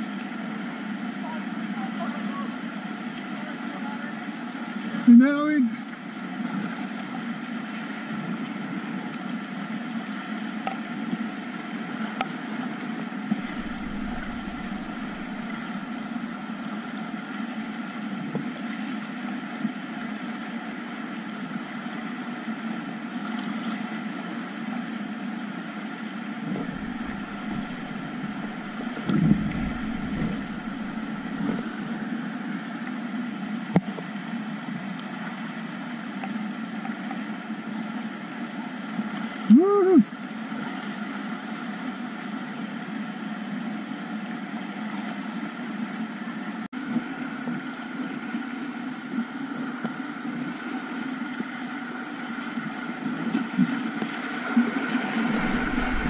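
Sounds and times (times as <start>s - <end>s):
microphone bumps: 13.4s - 15.8s, 26.5s - 31.8s, 55.3s - 56.0s
river rapids rushing: 13.4s - 16.0s, 26.5s - 31.8s, 55.3s - 56.0s.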